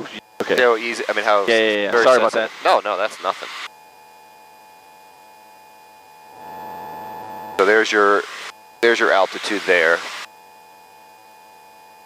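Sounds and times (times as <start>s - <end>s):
aircraft cockpit noise: 0.0s - 3.7s, 6.1s - 10.3s
electrical hum: 0.0s - 11.3s
faint whining tones: 4.5s - 10.3s.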